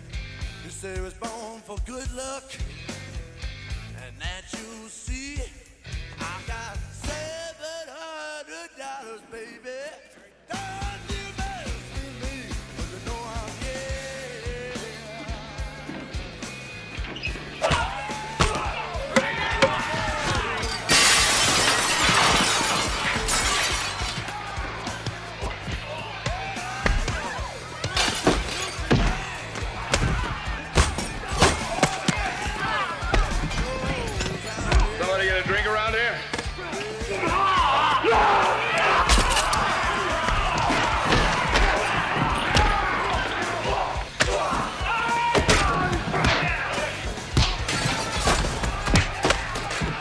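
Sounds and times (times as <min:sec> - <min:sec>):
men shouting and yelling: 0:17.4 - 0:50.0
glass shattering: 0:20.5 - 0:24.4, 0:27.9 - 0:29.3, 0:39.1 - 0:39.6.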